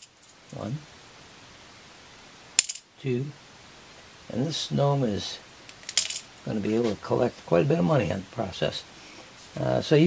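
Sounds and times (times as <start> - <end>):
coin clinking into wooden bank: 0.0 - 0.4, 2.6 - 2.9, 5.7 - 6.3.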